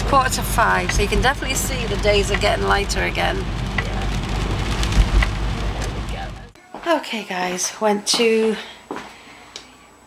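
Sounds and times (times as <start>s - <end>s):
raindrop ticks: 0.0s - 6.5s
low bump: 0.0s - 6.6s
low road rumble: 0.0s - 6.6s
rain on car windshield and roof: 0.0s - 6.6s.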